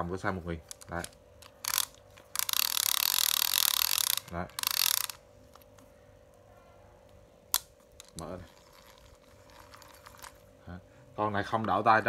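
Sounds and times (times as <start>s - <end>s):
fishing reel ratcheting: 0.7s - 5.6s, 7.5s - 10.4s.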